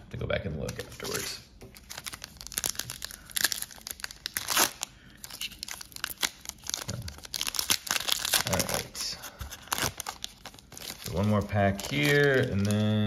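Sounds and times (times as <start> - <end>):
foil wrapper crinkling: 0.6 - 13.0
foil wrapper sharp tears: 1.9 - 8.9, 9.6 - 12.9.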